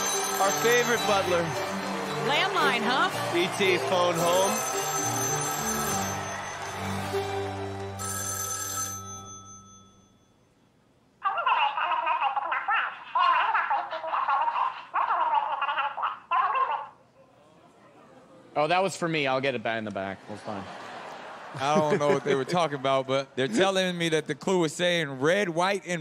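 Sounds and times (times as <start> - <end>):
telephone ringing: 0.0 - 10.4
garbled voice through telephone: 11.2 - 17.0.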